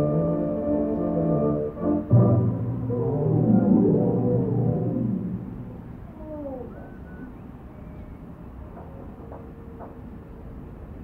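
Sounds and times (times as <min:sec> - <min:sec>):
muffled film score music: 0:00.0 - 0:05.8.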